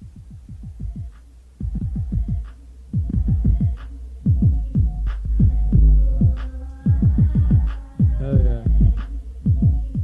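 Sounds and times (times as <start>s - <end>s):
hip hop beat: 0.0s - 10.0s
deep kick drum hits: 3.0s - 10.0s
sustained low bass: 3.0s - 10.0s.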